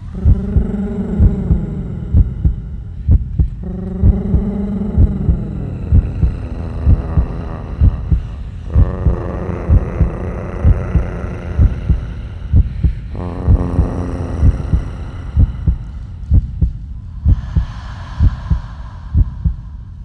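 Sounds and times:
deep kick drum: 12.6 - 18.6.

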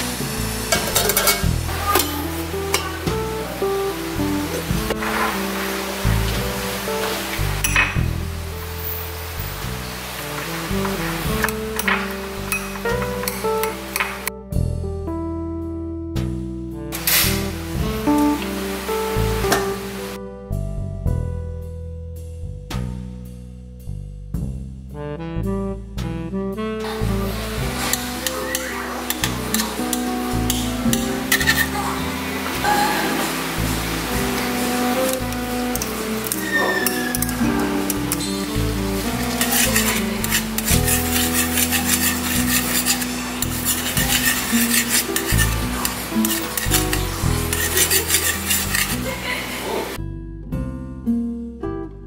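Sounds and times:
background music: 0.0 - 52.0
metal spoon scraping a pan: 0.6 - 3.0, 11.3 - 14.3, 27.0 - 32.4, 34.4 - 50.0.

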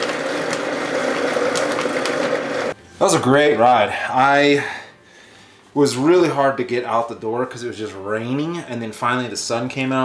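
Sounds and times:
blender motor whirring: 0.0 - 2.8.

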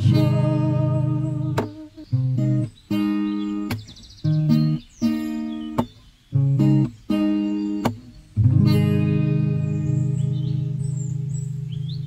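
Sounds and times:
acoustic guitar chord ringing: 0.0 - 12.0
high bird chirps: 0.0 - 12.0.

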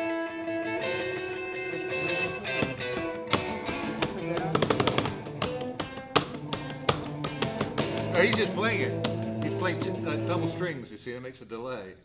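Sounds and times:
electric guitar with delay: 0.0 - 10.7.

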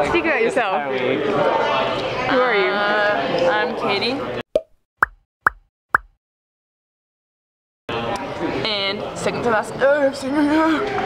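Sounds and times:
short pop sound effects: 4.6 - 6.2.

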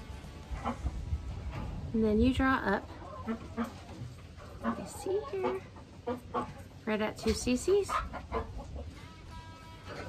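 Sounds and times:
chicken clucking: 0.5 - 1.2, 2.6 - 10.0.

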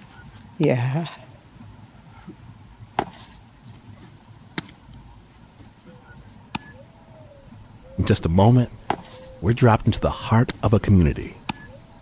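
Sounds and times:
baseball smacking into glove: 8.9 - 9.2.

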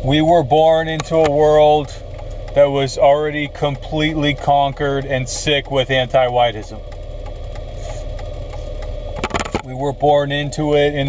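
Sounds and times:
car engine rumbling: 0.0 - 11.0
faint steady hum: 0.0 - 11.0.

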